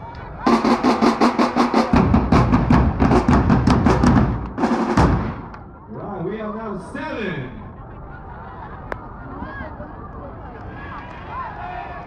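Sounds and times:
marching drumline beat: 0.4s - 5.6s
deep booming drums: 0.4s - 5.7s.

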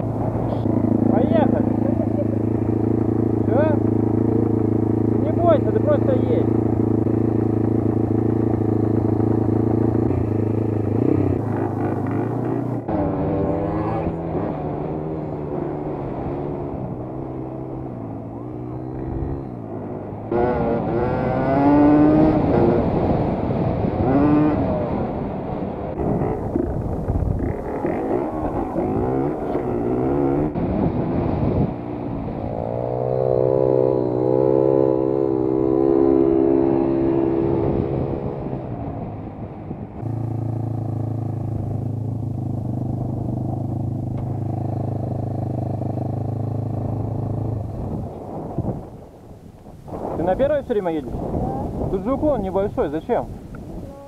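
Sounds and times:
dirt bike engine revving: 0.0s - 25.2s, 25.9s - 38.7s.

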